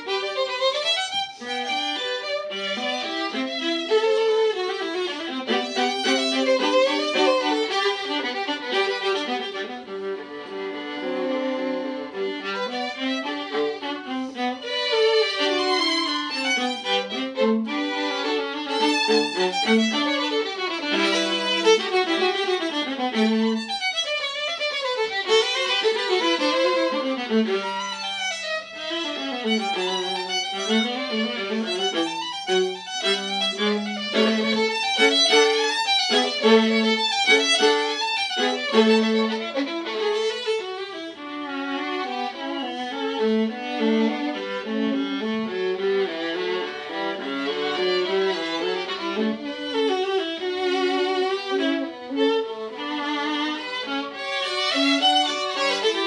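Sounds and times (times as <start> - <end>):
viola playing: 0.0 - 56.0
violin playing: 0.0 - 56.0.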